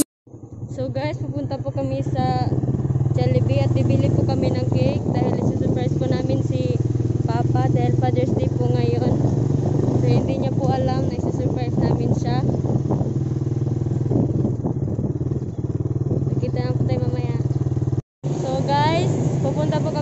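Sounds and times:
motorcycle engine running: 0.0 - 20.0
person talking: 3.2 - 9.2, 10.0 - 12.5, 16.3 - 17.5.

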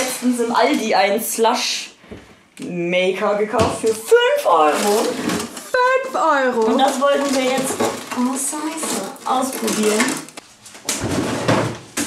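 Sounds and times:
frozen items knocking about: 3.7 - 11.9.

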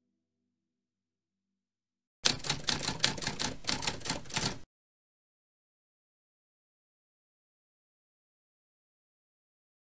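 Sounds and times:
typewriter keys clacking: 2.2 - 4.6.

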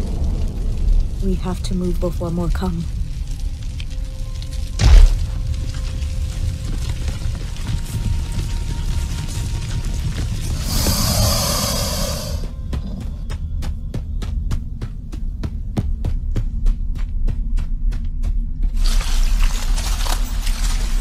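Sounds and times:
low rumbling hum: 0.0 - 21.0
hiss: 10.4 - 12.6.

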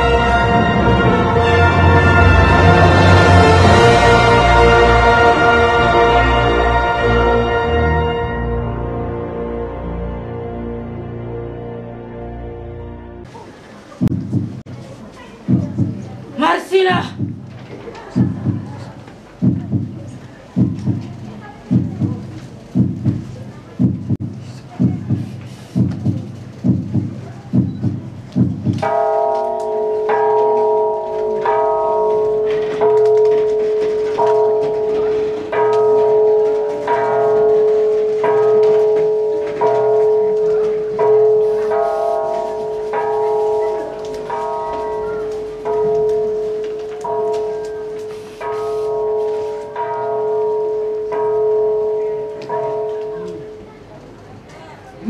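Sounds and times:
low thumps: 14.0 - 29.3
bell struck slowly: 28.4 - 53.8.

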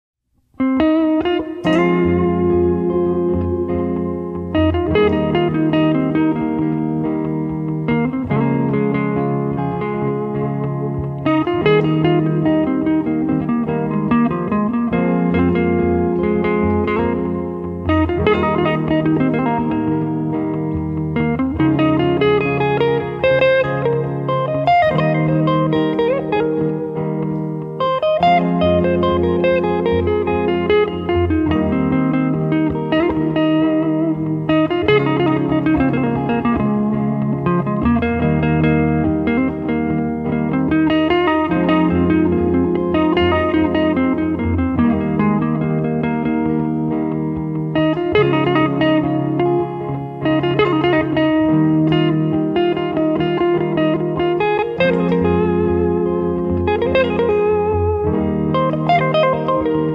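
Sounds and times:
electric guitar lead lines: 0.3 - 59.9.

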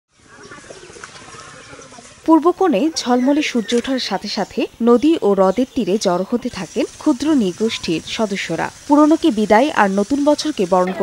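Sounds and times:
steady background hiss: 1.0 - 11.0.

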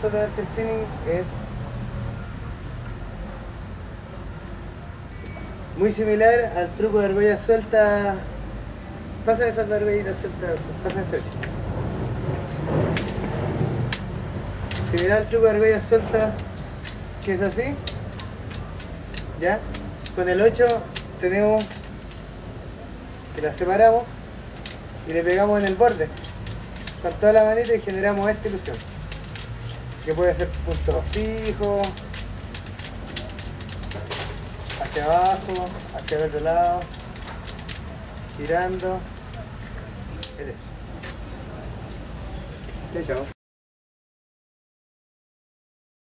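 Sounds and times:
plastic rings clicking together: 14.7 - 15.2, 16.4 - 22.2, 24.6 - 39.5.

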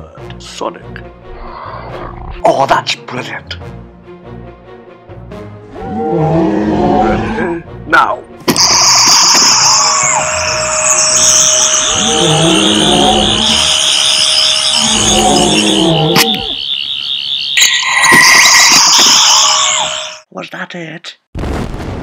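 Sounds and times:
high electronic whines: 8.5 - 20.3
pulsing warble: 8.6 - 20.2.

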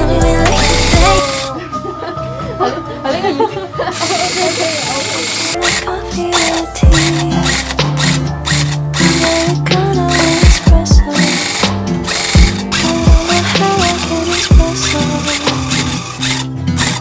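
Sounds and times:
music with deep kick-drum beat: 0.0 - 1.3, 6.8 - 8.3, 9.6 - 15.6
electric tufting gun chattering: 3.9 - 17.0.

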